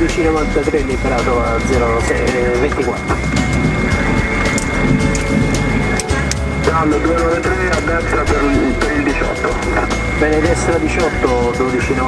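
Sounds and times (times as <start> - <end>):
aircraft cockpit rumble: 0.0 - 12.0
thin high whine: 0.0 - 12.0.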